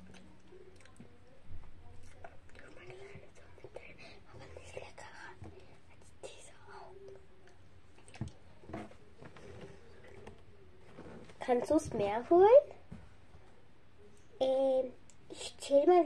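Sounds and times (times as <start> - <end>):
faint clicks and mouth noises: 0.0 - 11.2, 15.0 - 15.6
child whispering: 2.0 - 7.2, 14.4 - 16.0.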